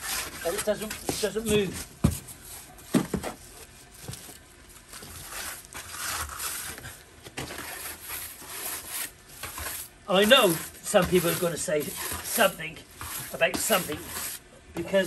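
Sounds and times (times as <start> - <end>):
trowels scraping wet mortar: 0.0 - 1.9, 5.0 - 15.0.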